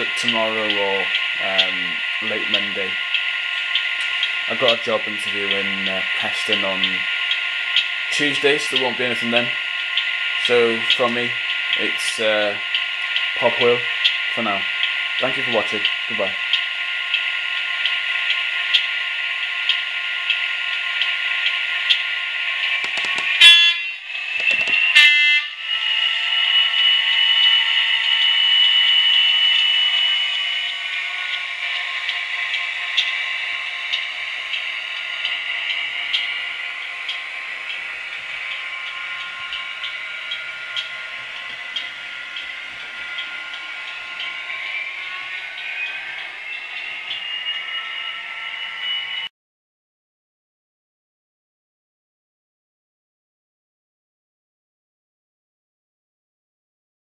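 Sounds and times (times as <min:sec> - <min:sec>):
model diesel engine sound: 0:00.0 - 0:09.6
short horn blasts: 0:23.4 - 0:24.0, 0:24.9 - 0:25.6.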